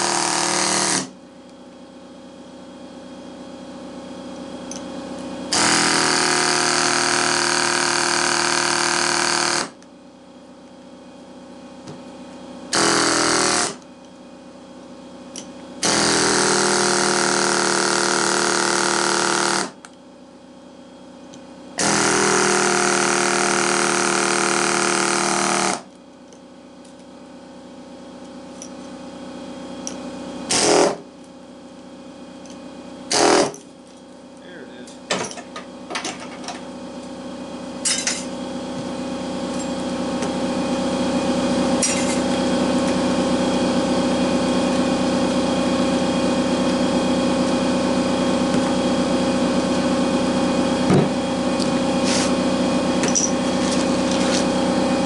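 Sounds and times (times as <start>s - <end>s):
steady machine hum: 0.0s - 55.0s.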